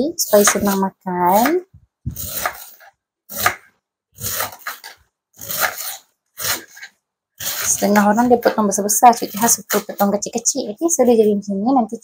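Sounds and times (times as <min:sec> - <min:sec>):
knife slicing cabbage: 0:00.2 - 0:10.2.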